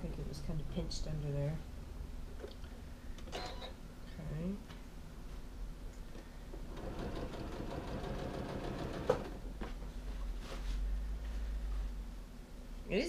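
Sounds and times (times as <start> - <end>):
sewing machine stitching: 6.7 - 9.4.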